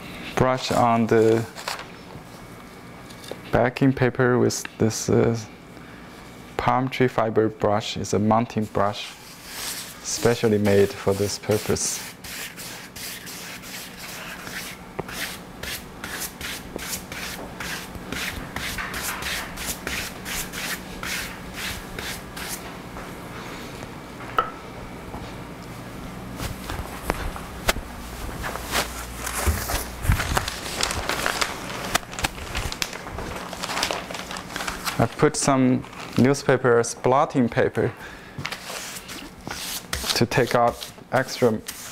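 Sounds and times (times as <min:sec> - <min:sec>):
brush stroking damp paper: 0:09.2 - 0:22.6, 0:38.6 - 0:41.9
paper rustling: 0:26.4 - 0:36.4.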